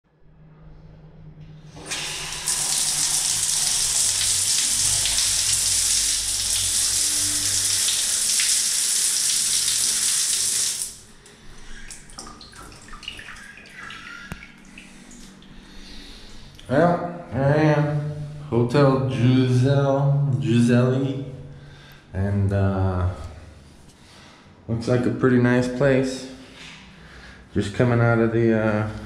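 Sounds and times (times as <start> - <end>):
shower spraying on tiles: 1.8 - 11.1.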